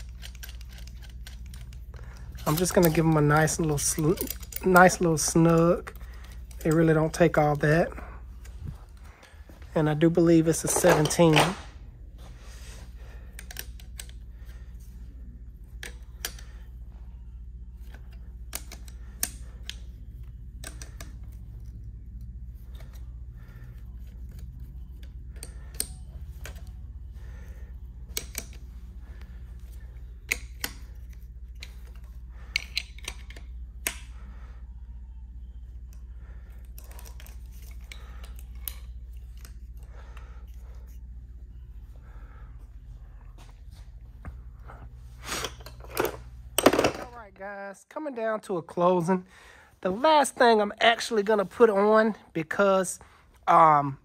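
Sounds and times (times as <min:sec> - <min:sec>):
wrench clicking on metal fittings: 0:00.0 - 0:07.2
steady low hum: 0:00.0 - 0:54.0.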